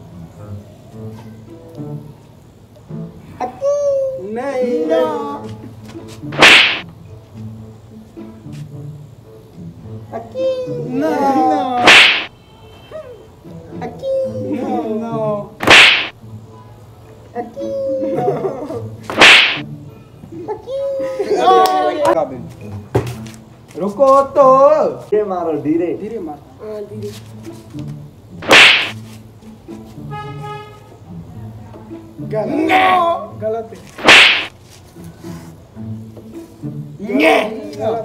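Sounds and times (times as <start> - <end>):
hand smacking helmet: 6.3 - 6.8, 11.8 - 12.3, 15.6 - 16.2, 19.1 - 19.6, 28.4 - 29.0, 34.0 - 34.5.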